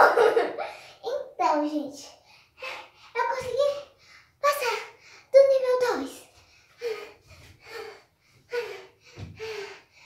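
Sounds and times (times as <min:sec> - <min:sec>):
girl gasping: 0:06.7 - 0:10.0.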